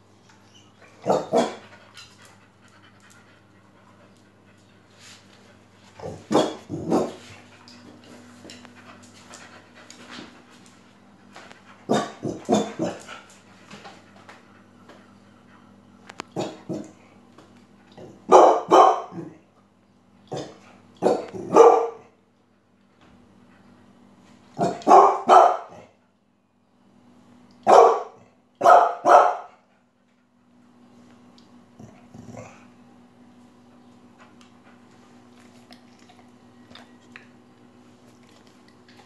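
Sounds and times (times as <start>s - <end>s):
dog barking: 1.0s - 1.6s, 6.3s - 7.1s, 11.9s - 13.0s, 18.3s - 19.3s, 20.3s - 22.1s, 24.6s - 25.8s, 27.6s - 29.5s
dog grumbling growl: 31.8s - 32.7s.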